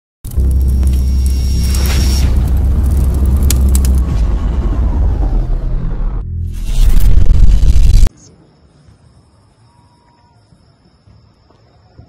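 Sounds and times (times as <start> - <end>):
whoosh-like swell: 0.9 - 8.1.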